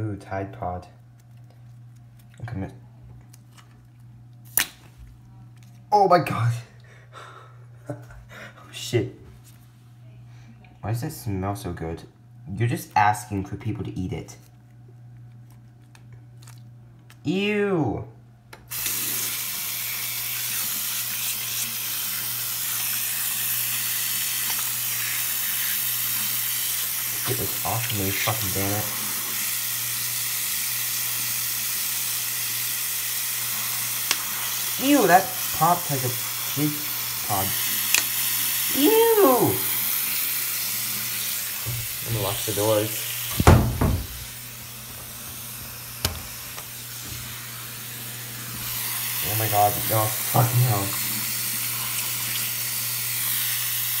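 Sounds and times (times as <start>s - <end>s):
tap running into sink: 41.2s - 47.3s
detergent pod bursting pop: 43.3s - 44.5s.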